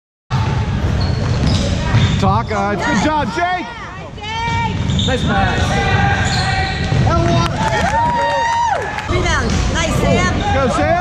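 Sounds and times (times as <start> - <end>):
game noise in a hall: 0.3 - 11.0.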